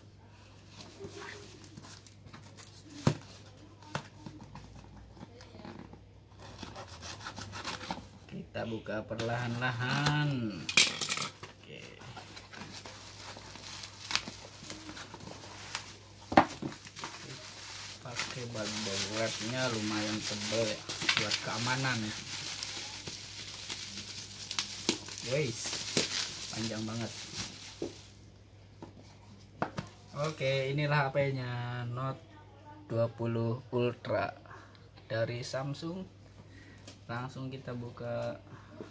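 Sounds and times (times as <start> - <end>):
bubble wrap and cardboard rustling: 0.4 - 10.5, 11.4 - 28.3, 29.0 - 30.9.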